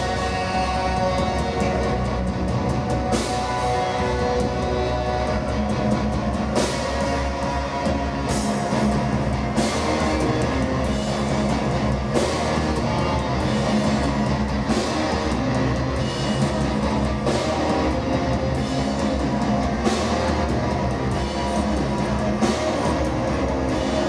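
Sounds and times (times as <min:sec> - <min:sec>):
live metal band playing: 0:00.0 - 0:24.0.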